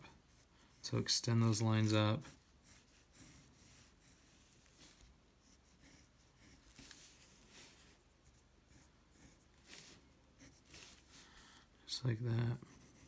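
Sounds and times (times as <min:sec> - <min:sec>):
pencil scratching on paper: 0:00.0 - 0:11.2, 0:12.4 - 0:13.0.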